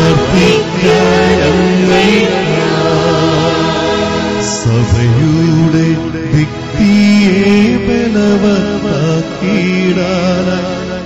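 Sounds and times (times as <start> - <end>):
choir singing a hymn: 0.0 - 5.3.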